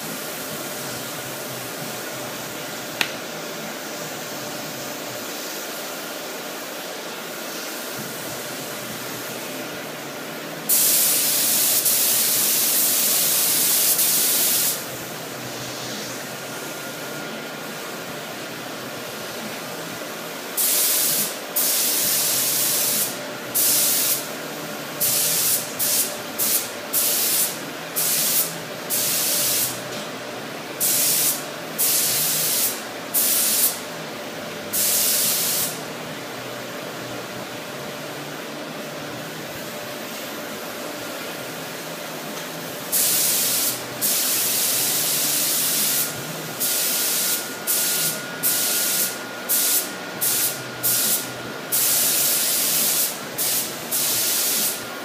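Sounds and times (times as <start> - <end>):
paint spray gun hissing: 10.7 - 14.9, 20.6 - 24.2, 25.0 - 29.8, 30.8 - 33.8, 34.8 - 35.8, 42.9 - 54.8.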